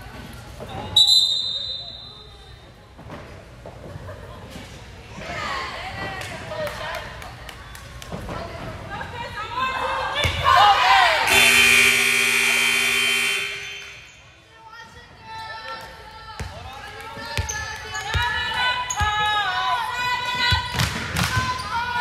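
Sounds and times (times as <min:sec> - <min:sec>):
scoreboard horn blast: 0:11.3 - 0:14.0.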